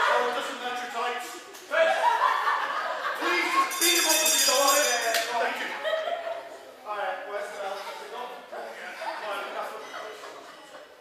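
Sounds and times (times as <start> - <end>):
audience calling out and chattering: 3.0 - 11.0.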